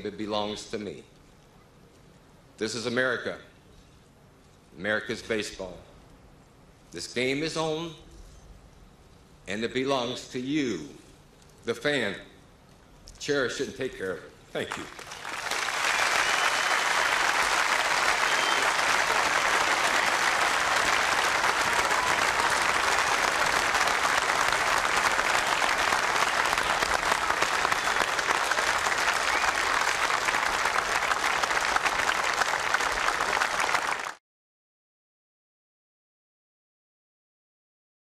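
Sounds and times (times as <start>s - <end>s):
crowd applauding: 14.7s - 34.2s.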